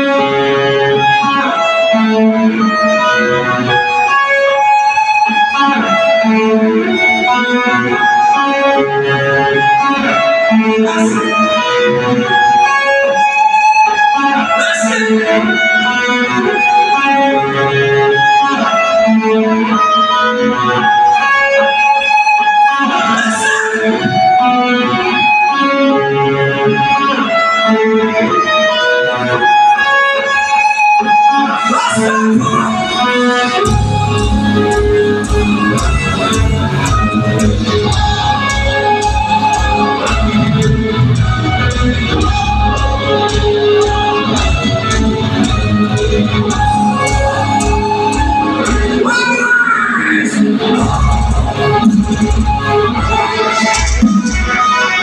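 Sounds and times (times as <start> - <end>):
electric guitar lead riff: 0.0 - 55.0.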